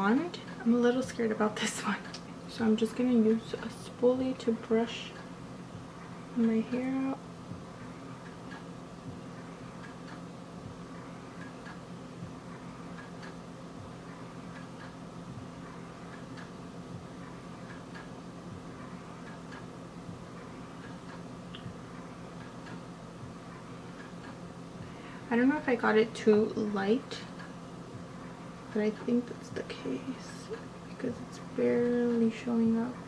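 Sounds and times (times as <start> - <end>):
steady low hum: 0.0 - 33.0
faint irregular ticks: 11.0 - 11.8, 12.5 - 13.4, 17.2 - 19.7.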